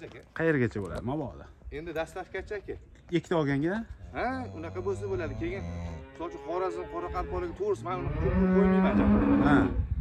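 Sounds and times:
cow mooing: 4.1s - 9.7s.

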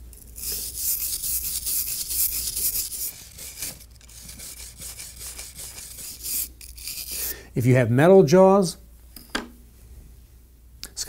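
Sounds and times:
stiff brush scrubbing metal: 0.3s - 7.3s.

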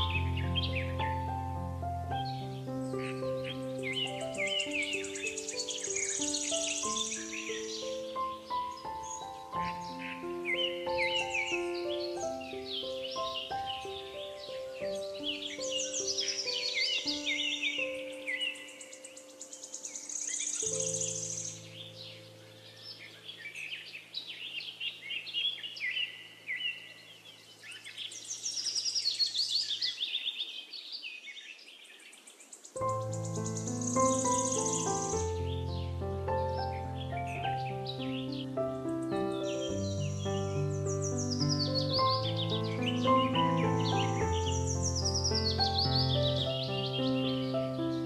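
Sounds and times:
soft piano music: 0.0s - 26.7s, 32.7s - 48.0s
forest birds chirping: 0.0s - 48.0s.

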